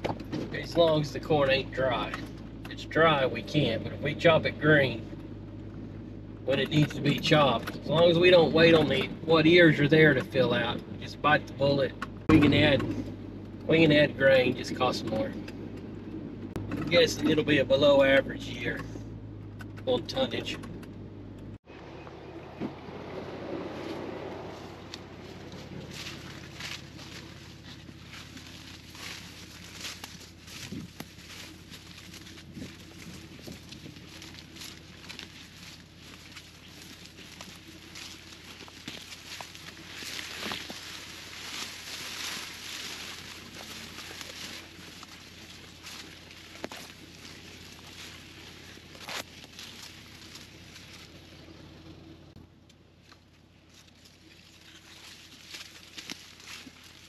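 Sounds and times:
corn leaves rustling: 23.2s - 57.0s
footsteps on dry ground: 23.6s - 52.3s, 52.9s - 57.0s.

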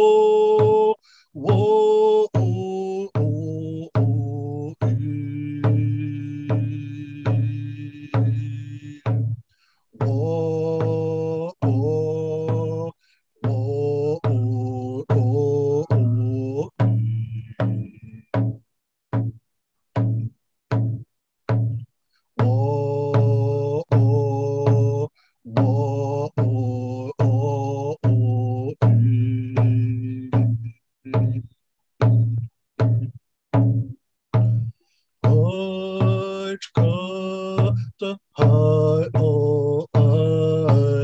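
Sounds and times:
hand drum beat: 0.0s - 1.8s, 2.4s - 9.4s, 10.0s - 21.8s, 22.4s - 41.0s
man singing a chant: 0.0s - 9.4s, 10.0s - 18.3s, 22.4s - 31.5s, 33.8s - 41.0s.

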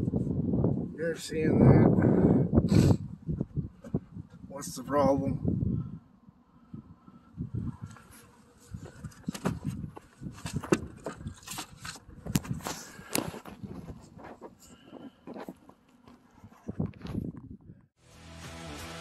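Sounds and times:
phone rustling against jacket: 7.8s - 17.4s.

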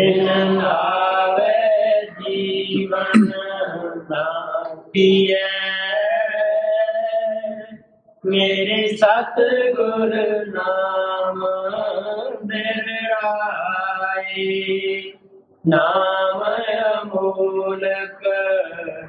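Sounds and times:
person chanting a hymn: 0.0s - 19.0s.

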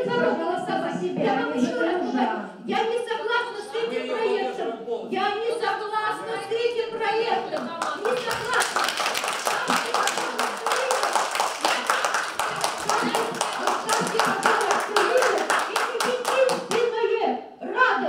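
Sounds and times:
audience clapping: 7.6s - 16.9s.

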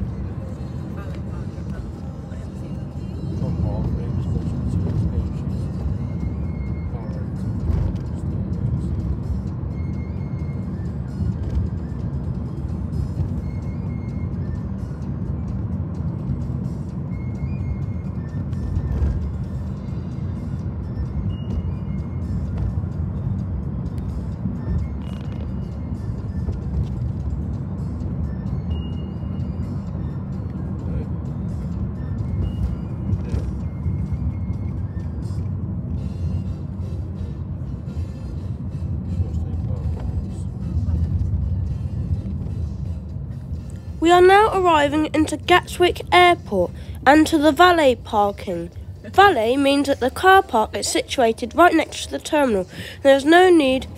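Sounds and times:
car cabin road rumble: 0.0s - 53.9s
music playing: 0.0s - 53.9s.

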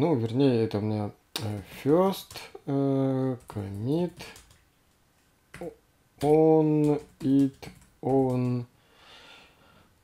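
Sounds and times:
person speaking: 0.0s - 4.6s, 5.6s - 8.7s
computer keyboard keystrokes: 3.4s - 4.6s, 5.5s - 8.6s.

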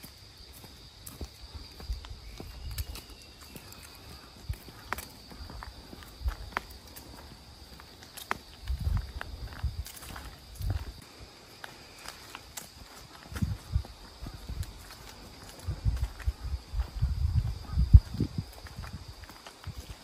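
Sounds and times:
heeled sandals clicking on path: 0.0s - 20.0s
high insect drone: 0.0s - 20.0s.

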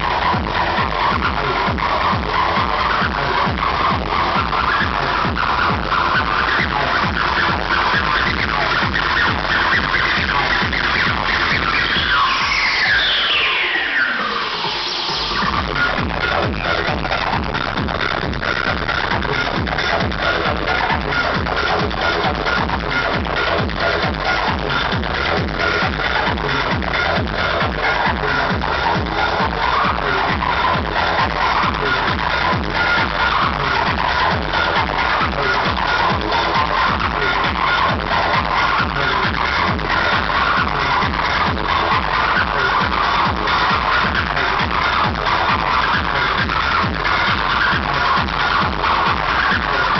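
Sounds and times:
kick drum beat: 0.0s - 12.1s, 15.2s - 49.9s
acid house rave music: 0.0s - 49.9s
synth sweep falling in pitch: 11.3s - 19.6s.

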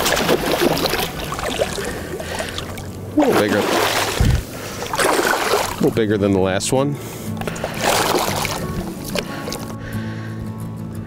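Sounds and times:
fish splashing and thrashing: 0.0s - 6.0s, 7.4s - 9.8s
water sloshing and dripping: 0.0s - 6.1s, 7.4s - 9.8s.

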